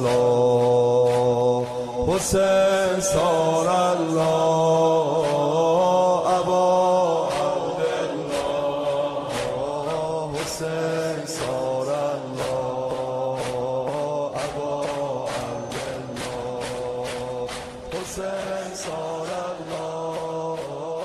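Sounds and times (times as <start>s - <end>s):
devotional chant singing: 0.0s - 21.0s
percussive beat: 0.0s - 21.0s.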